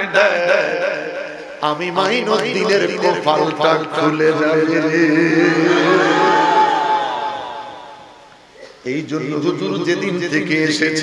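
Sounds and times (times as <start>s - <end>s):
man chanting over loudspeaker: 0.0s - 6.4s, 8.8s - 11.0s.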